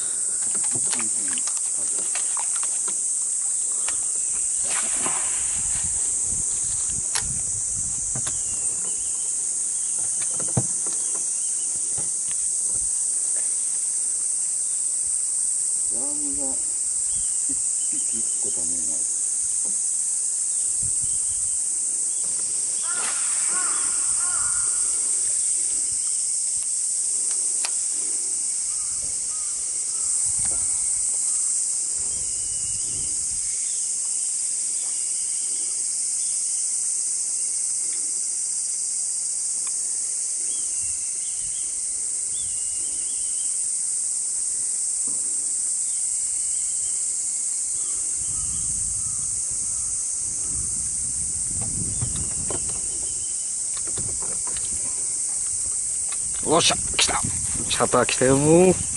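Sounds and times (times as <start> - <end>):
insects chorus: 0.0 - 58.9.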